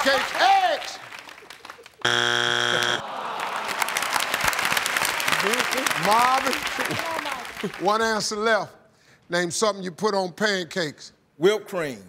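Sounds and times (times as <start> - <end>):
audience applauding: 0.0 - 8.2
harsh low buzzer: 2.0 - 3.0.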